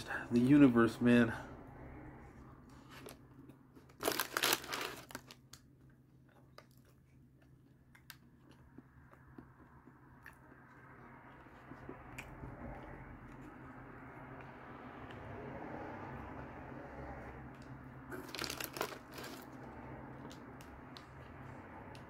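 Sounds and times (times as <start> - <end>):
person chewing crunchy food: 2.7 - 15.4, 17.4 - 22.0
crackly crunch: 2.8 - 10.6, 17.6 - 21.2.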